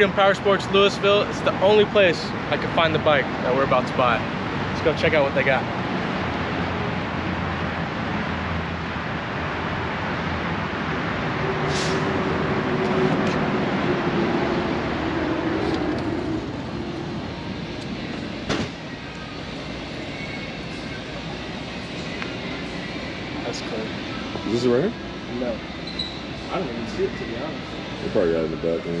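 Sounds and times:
traffic: 0.0s - 29.0s
wind: 0.0s - 29.0s
glass door shutting with click: 18.5s - 18.8s.

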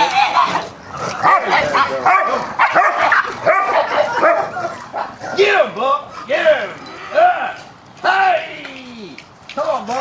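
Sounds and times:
dogs barking and yipping: 0.0s - 7.2s.

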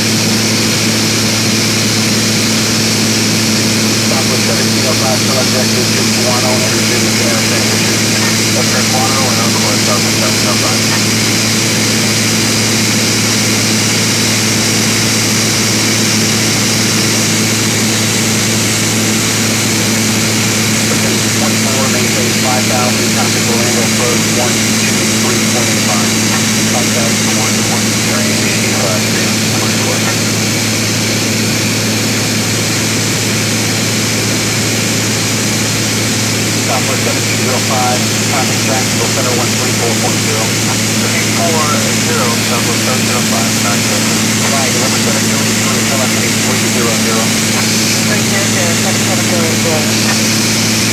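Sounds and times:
aircraft engine and propeller drone: 0.0s - 50.9s
constant low hum: 0.0s - 50.9s.

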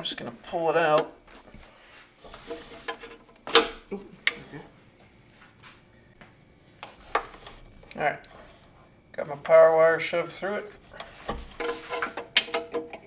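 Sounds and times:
rustling and handling noise: 0.0s - 13.0s.

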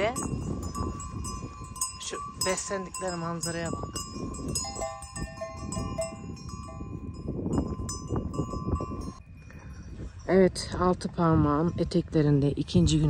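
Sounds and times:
cowbells clanking: 0.0s - 10.7s.

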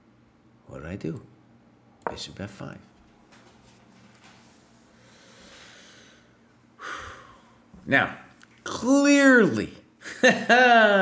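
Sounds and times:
sharp intake of breath: 4.9s - 7.6s
man breathing: 4.9s - 7.7s.

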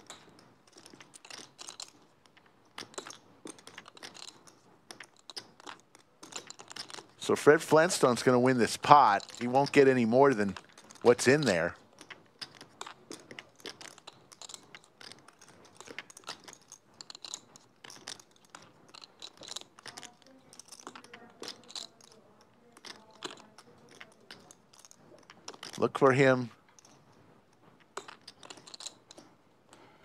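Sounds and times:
clay poker chips clicking: 0.0s - 30.0s.

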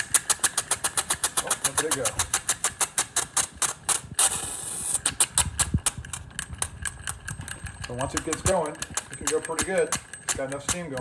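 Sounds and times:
model steam engine clicking: 0.0s - 4.2s, 5.0s - 11.0s
steam hiss: 4.2s - 5.1s.

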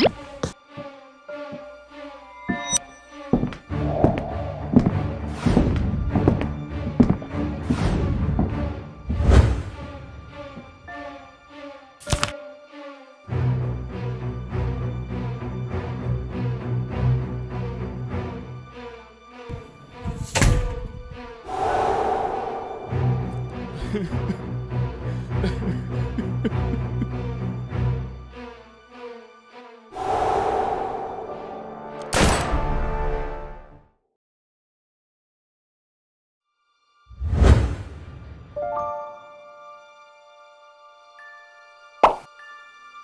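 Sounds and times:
dramatic music: 0.0s - 33.8s
noisy rush: 21.4s - 23.7s, 30.0s - 32.1s.

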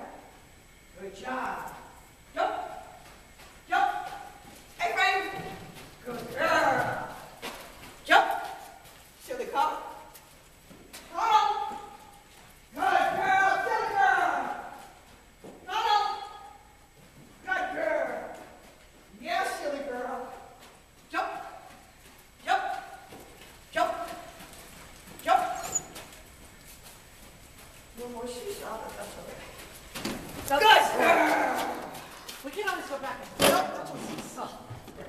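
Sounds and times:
person calling out: 30.5s - 32.0s.

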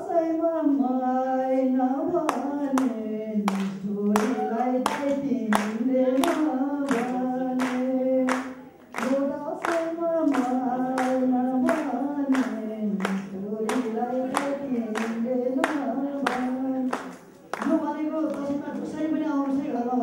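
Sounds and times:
man singing unaccompanied: 0.0s - 20.0s
hands clapping a beat: 2.3s - 19.7s.

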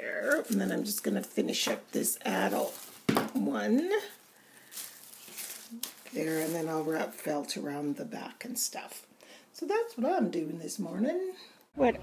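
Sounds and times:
faint rustling of fabric: 0.1s - 10.2s.

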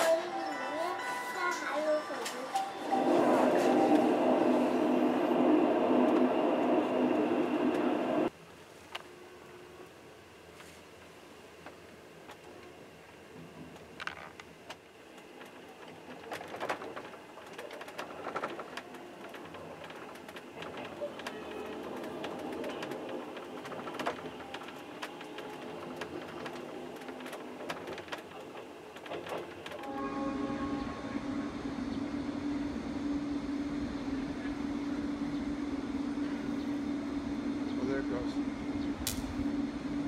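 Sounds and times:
train rattling and clicking: 0.0s - 8.3s, 11.6s - 32.2s
electric locomotive humming: 0.0s - 8.4s, 11.2s - 40.0s.

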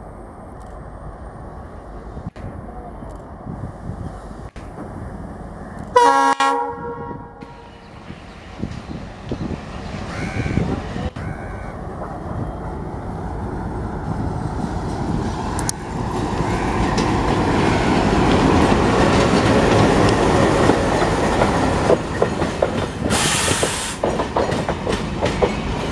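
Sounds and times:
diesel locomotive rumble: 0.0s - 25.9s
train wheels clickety-clack: 14.6s - 25.9s
train hiss: 22.9s - 24.2s.

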